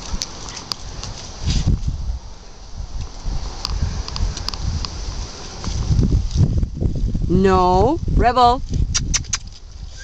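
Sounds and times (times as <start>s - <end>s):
light footsteps on pavement: 0.0s - 7.2s
sharp clicks: 9.0s - 9.6s.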